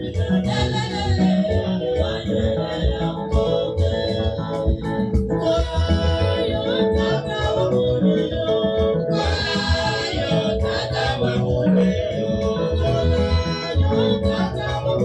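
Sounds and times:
steady bass beat: 0:00.0 - 0:15.0
sustained keyboard chords: 0:00.0 - 0:15.0
women's choir singing gospel: 0:00.0 - 0:15.0.

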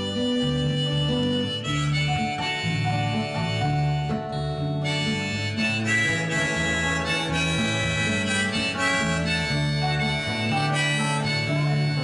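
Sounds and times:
bass line: 0:00.0 - 0:12.0
harmonica solo: 0:00.0 - 0:12.0
strummed acoustic guitar: 0:00.0 - 0:12.0.

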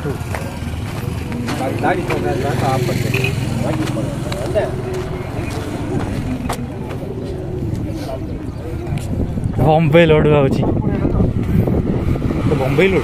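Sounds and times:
road traffic engine hum: 0:00.0 - 0:13.0
voices talking indistinctly: 0:00.0 - 0:13.0.

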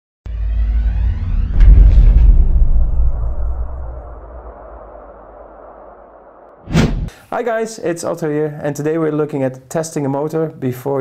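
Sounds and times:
low rumbling sound effect: 0:00.2 - 0:07.1.

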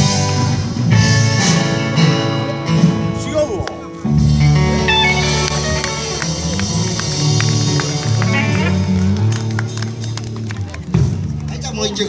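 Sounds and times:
country band playing: 0:00.0 - 0:12.0.

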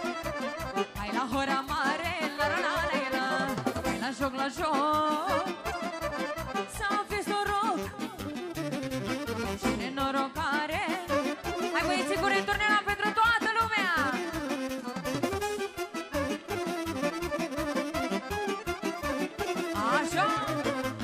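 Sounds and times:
folk dance band over speakers: 0:00.0 - 0:21.0.

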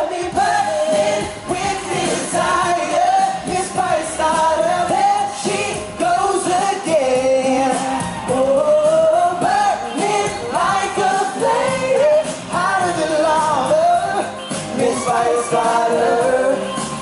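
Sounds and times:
backing music: 0:00.0 - 0:17.0
men singing long sliding notes: 0:00.0 - 0:17.0.

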